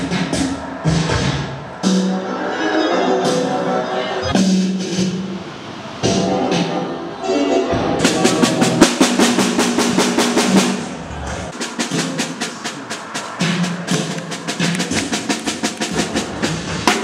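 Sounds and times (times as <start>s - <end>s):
snare drum fast strokes: 11.5s - 17.0s.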